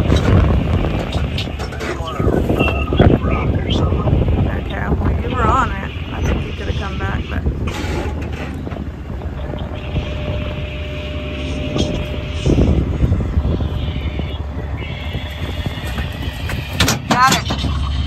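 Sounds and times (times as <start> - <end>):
pickup engine idling: 0.0 - 18.0
rough rumble with knocks: 0.0 - 18.0
thin steady whine: 0.0 - 18.0.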